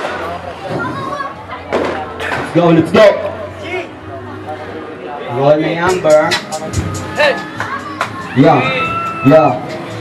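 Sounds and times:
crowd noise and voices: 0.0 - 10.0
loud rush of noise: 0.0 - 10.0.

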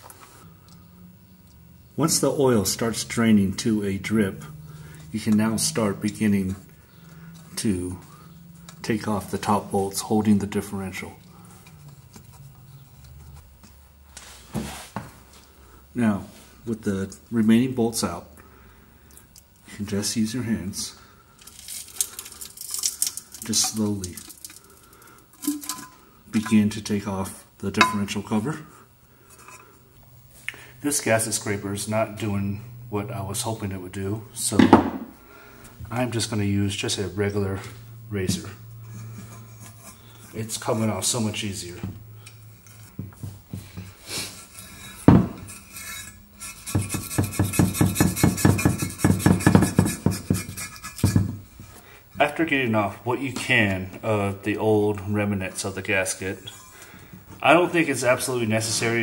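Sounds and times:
scraping gasket off metal: 38.4 - 41.5, 44.1 - 51.8.

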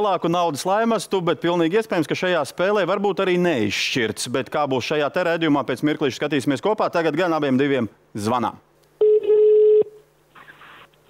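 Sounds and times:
telephone ringback tone: 9.0 - 10.0.

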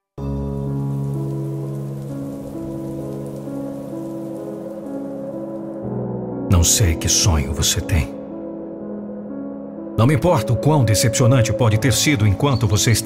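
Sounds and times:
steady rain: 0.3 - 5.9.

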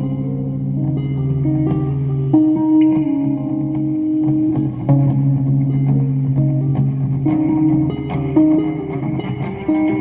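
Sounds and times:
electric guitar held notes: 0.0 - 10.0.

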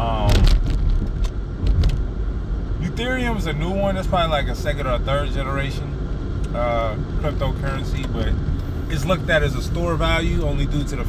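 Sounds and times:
low rumble inside car: 0.0 - 11.0.

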